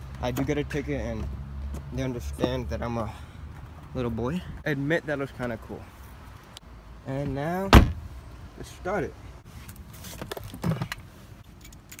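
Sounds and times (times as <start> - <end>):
car keys rattling: 10.3 - 12.0.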